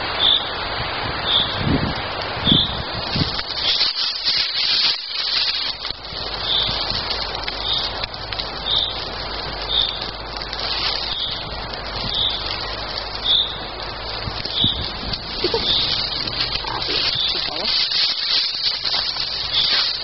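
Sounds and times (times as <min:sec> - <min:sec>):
small fire crackling: 0:00.0 - 0:20.0
rustling handling noise: 0:11.8 - 0:20.0.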